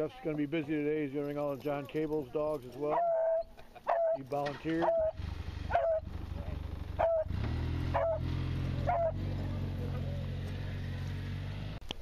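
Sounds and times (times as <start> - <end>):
dog barking: 2.9 - 4.2, 4.8 - 6.1, 7.0 - 7.3, 7.9 - 8.2, 8.8 - 9.2
low engine hum: 4.8 - 12.0.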